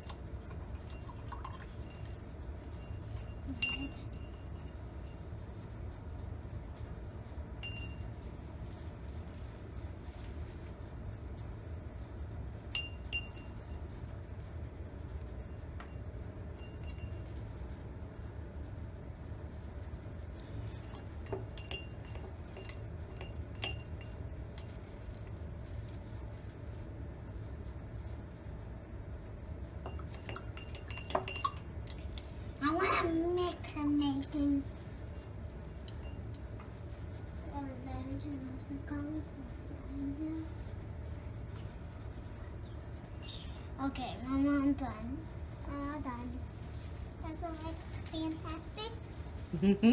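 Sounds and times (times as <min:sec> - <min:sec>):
paintbrush clinking glass jar: 0:00.0 - 0:05.4, 0:07.6 - 0:08.2, 0:12.7 - 0:13.8, 0:15.8 - 0:17.4, 0:20.8 - 0:25.6, 0:29.8 - 0:32.2, 0:35.0 - 0:36.6
steady low hum: 0:00.0 - 0:49.9.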